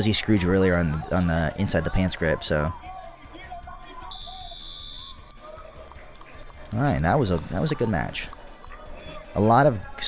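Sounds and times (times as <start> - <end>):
faint arena noise: 0.0 - 10.0
electronic buzzer beep: 4.1 - 5.2.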